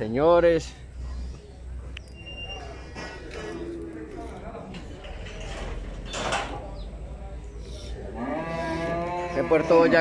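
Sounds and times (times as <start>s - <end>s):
cattle mooing: 8.0s - 10.0s.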